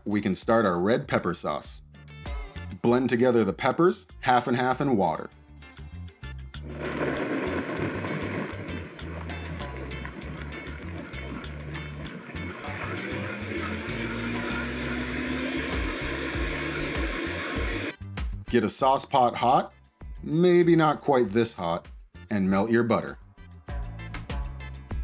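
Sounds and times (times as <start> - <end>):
background music: 0.0 - 25.0
blender running: 6.6 - 9.1, 9.7 - 18.0.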